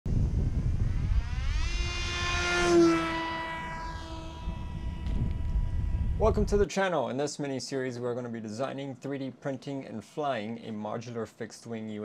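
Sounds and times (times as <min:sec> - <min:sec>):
low rumble: 0:00.1 - 0:06.6
model airplane motor whine: 0:00.1 - 0:06.6.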